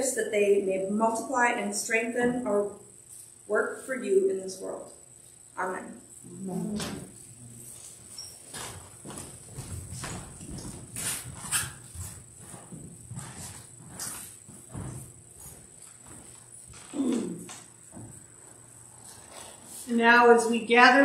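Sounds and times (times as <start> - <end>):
footsteps: 6.6 - 20.0.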